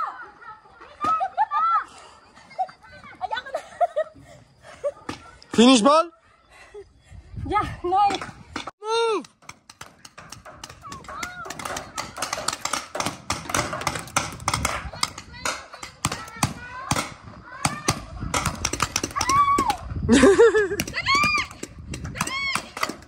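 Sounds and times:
paintball markers firing: 0:09.3 - 0:19.8.

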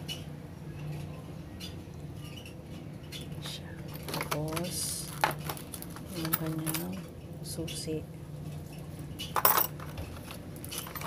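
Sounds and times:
steady low hum: 0:00.0 - 0:11.0
plastic packaging crinkling: 0:04.0 - 0:06.7.

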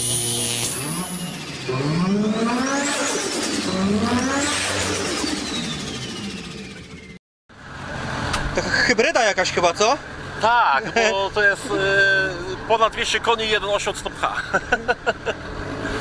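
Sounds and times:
high whistling whine: 0:00.0 - 0:01.8
car engine idling and revving: 0:00.4 - 0:16.0.

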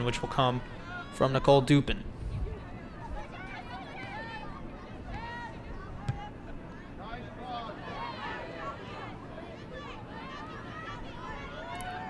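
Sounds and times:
crowd chatter: 0:00.0 - 0:12.0
voices calling out: 0:02.6 - 0:12.0.

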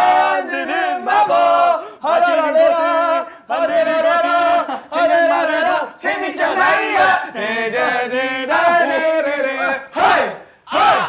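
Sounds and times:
young men chanting: 0:00.0 - 0:11.0
men shouting: 0:04.5 - 0:07.4, 0:08.8 - 0:11.0.

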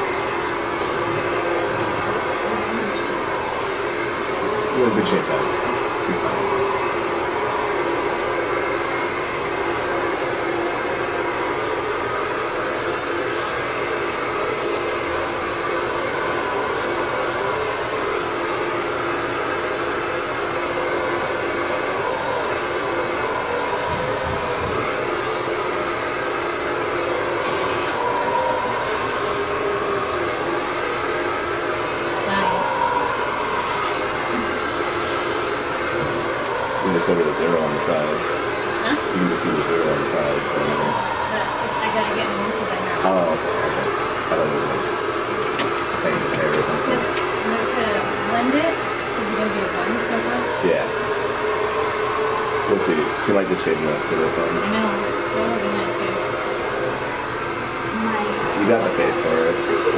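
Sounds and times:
electric hair clippers humming: 0:00.0 - 0:59.9.

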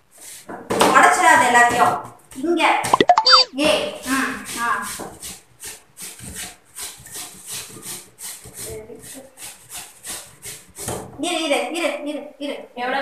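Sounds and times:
potato rasping on a grater: 0:04.0 - 0:10.9.

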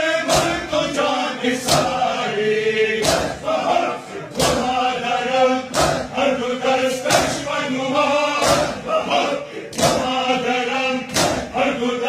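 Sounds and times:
crowd of men chanting: 0:00.0 - 0:12.0.

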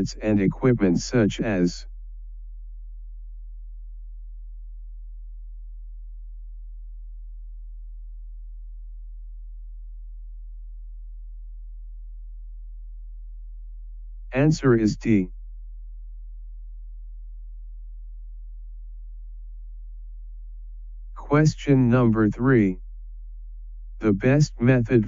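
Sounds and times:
steady low-pitched hum: 0:00.0 - 0:25.0.

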